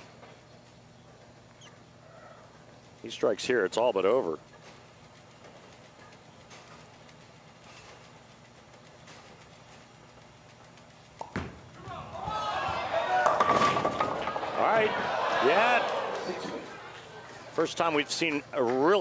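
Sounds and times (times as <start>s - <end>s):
crowd voices reacting: 11.8s - 13.5s, 14.1s - 17.6s
bowling ball crashing into pins: 12.7s - 14.6s.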